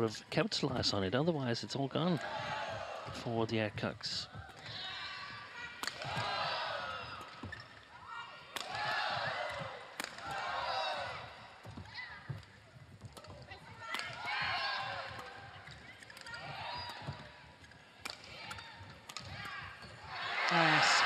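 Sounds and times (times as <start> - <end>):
racket striking shuttlecock: 5.8 - 6.3, 8.5 - 12.5, 13.1 - 20.0
shoes squeaking on court: 6.2 - 8.1, 9.2 - 20.1.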